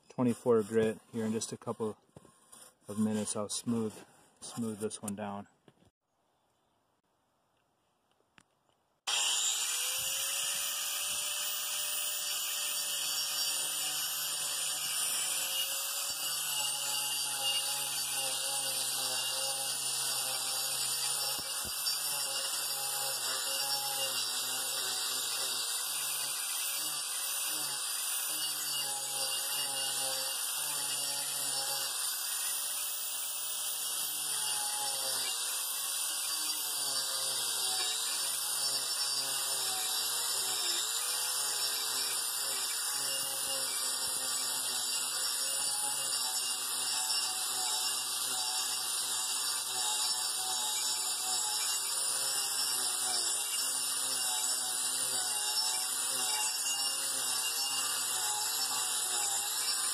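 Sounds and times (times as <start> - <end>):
angle grinder grinding wood: 0.0 - 5.4, 9.1 - 59.9.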